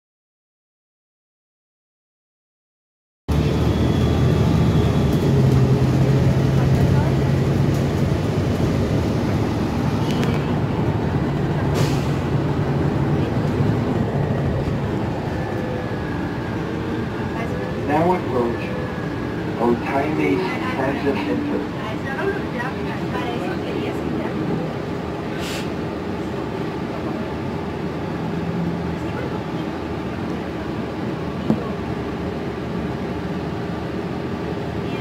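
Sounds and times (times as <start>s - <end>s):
bus engine drone: 3.3s - 35.0s
road noise: 3.3s - 35.0s.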